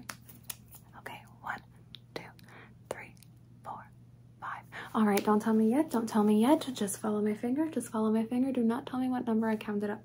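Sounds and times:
woman whispering: 0.9s - 5.1s.

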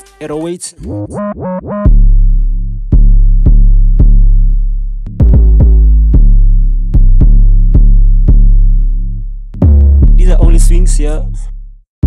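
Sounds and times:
deep bass notes in a beat: 0.0s - 11.8s.

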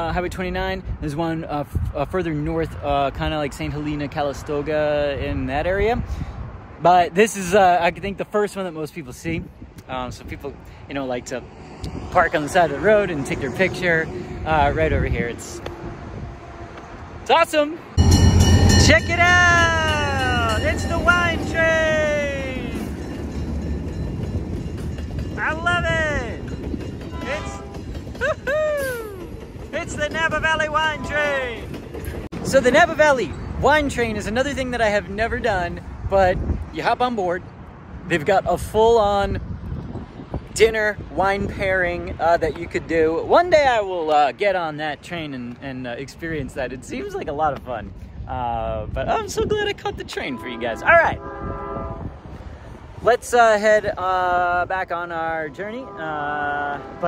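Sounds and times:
train wheels rumbling on rails: 18.0s - 35.9s
train horn chord: 27.1s - 27.8s, 50.3s - 52.3s, 55.4s - 57.0s.

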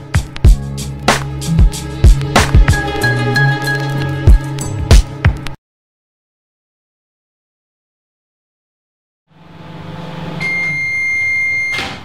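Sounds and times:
high electronic beep: 10.4s - 11.8s.

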